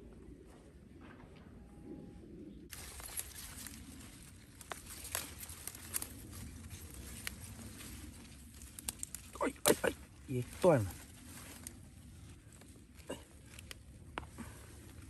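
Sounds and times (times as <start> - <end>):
leaves rustling: 2.7 - 15.0
soft clicks and snaps: 8.6 - 9.3.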